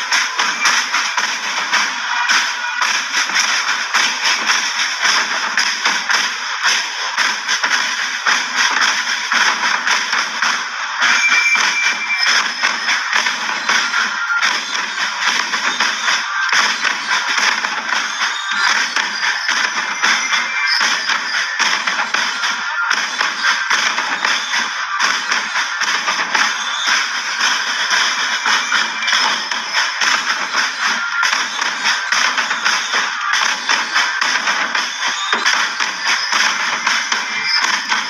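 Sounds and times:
loud music over loudspeakers: 0:00.0 - 0:38.0.

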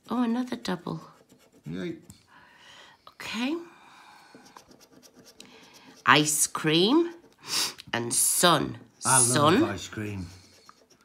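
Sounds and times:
coin scraping scratch card: 0:04.4 - 0:07.4, 0:09.1 - 0:11.0.

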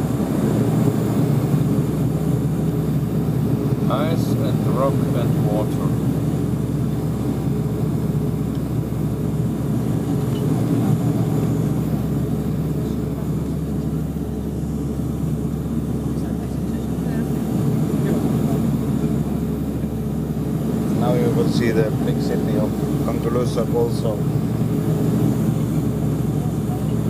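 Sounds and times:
turboprop engines droning: 0:00.0 - 0:27.0.

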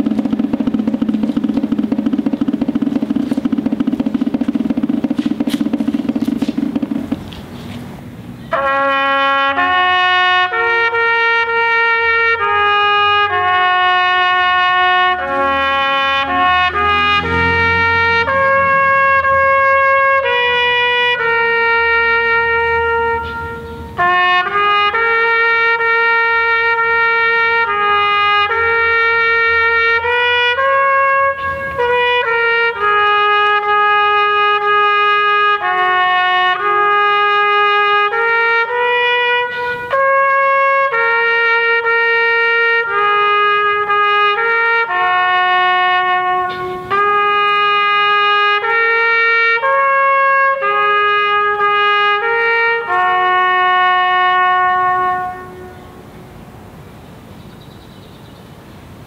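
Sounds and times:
solo trumpet slow melody: 0:08.5 - 0:57.1.

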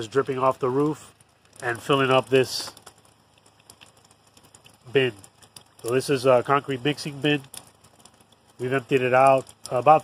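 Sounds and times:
water drips falling into tub: 0:00.0 - 0:10.0.

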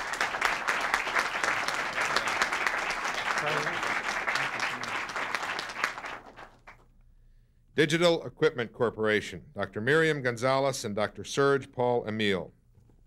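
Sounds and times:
audience applauding: 0:00.0 - 0:06.8.

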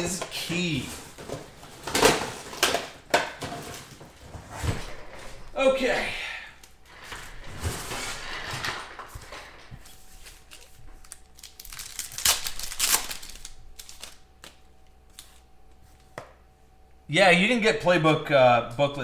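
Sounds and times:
cards being handled: 0:09.1 - 0:16.4
foil pack tearing and crinkling: 0:10.2 - 0:15.4.

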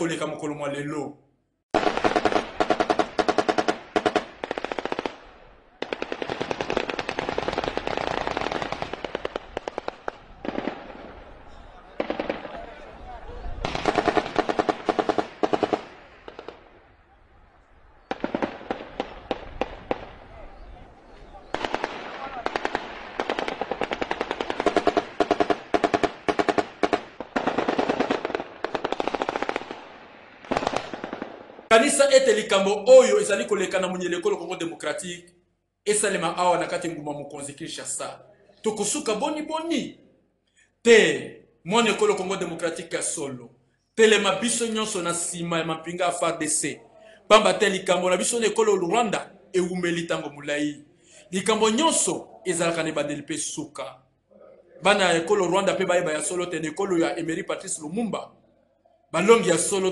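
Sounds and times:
automatic gunfire bursts: 0:01.8 - 0:05.2, 0:05.8 - 0:11.0, 0:12.0 - 0:12.6, 0:13.6 - 0:16.6, 0:18.1 - 0:20.1, 0:21.4 - 0:29.8, 0:30.5 - 0:31.4.

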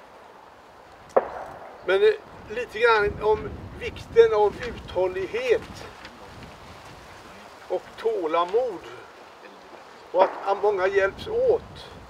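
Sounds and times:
faint background hiss: 0:00.0 - 0:12.0
man's voice: 0:01.9 - 0:05.9, 0:10.2 - 0:12.0.

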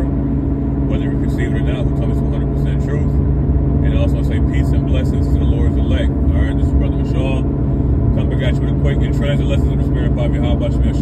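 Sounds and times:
car driving rumble: 0:00.0 - 0:11.0
man speaking: 0:00.9 - 0:03.2, 0:03.8 - 0:07.5, 0:08.2 - 0:11.0.

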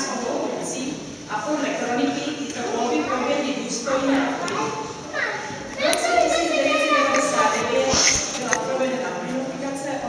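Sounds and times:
small child babbling: 0:04.5 - 0:08.4.

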